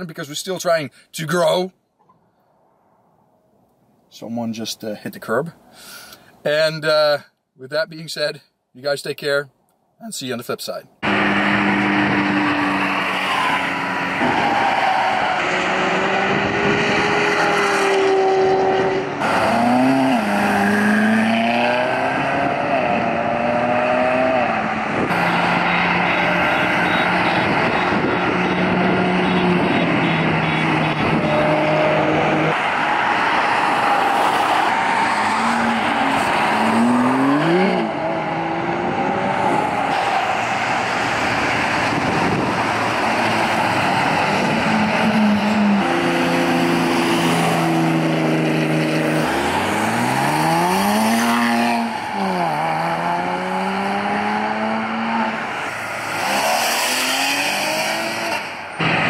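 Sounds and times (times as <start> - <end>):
sports car engines revving: 11.0 - 59.0.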